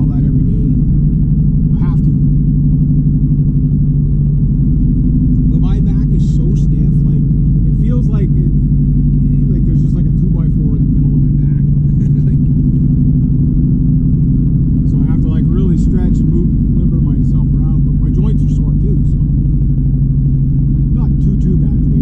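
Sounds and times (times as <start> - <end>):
person talking: 0.0 - 0.8, 1.7 - 2.2, 5.5 - 8.6, 9.2 - 12.4, 14.9 - 19.3, 21.0 - 22.0
car engine and road noise: 0.0 - 22.0.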